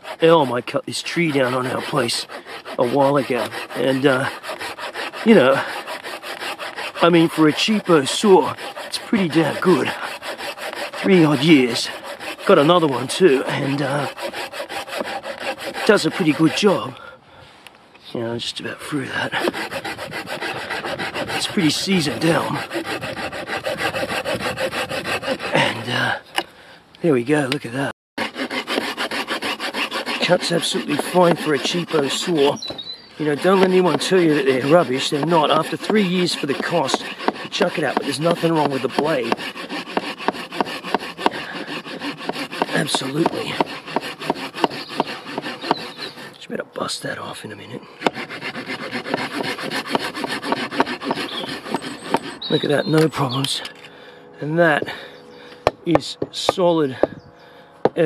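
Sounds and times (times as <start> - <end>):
hand saw rasping through log: 0.0 - 17.1, 18.6 - 26.5, 27.4 - 53.9, 54.7 - 57.2.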